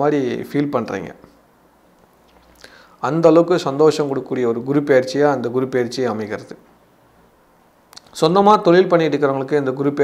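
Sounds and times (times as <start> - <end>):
man talking: 0.0 - 1.3, 3.0 - 6.7, 8.0 - 10.0
faint breath: 2.5 - 3.0
mouth click: 7.9 - 8.2.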